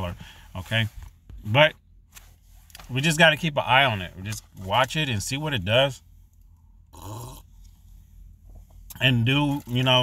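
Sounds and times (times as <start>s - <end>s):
faint breathing: 0.1s - 0.6s
person slurping coffee: 7.0s - 7.5s.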